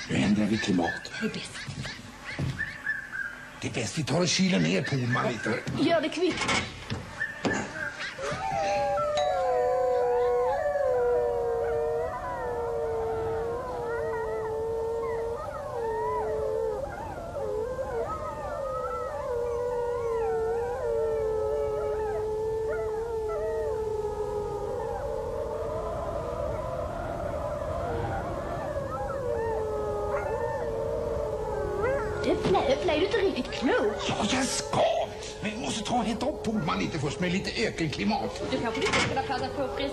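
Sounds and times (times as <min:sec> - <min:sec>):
howling wind sound effect: 0:08.7 - 0:39.9.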